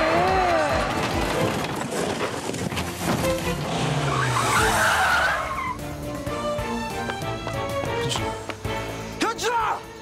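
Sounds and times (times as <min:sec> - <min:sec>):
car tyres screeching: 0:00.8 - 0:06.0
background music with held notes: 0:04.8 - 0:10.0.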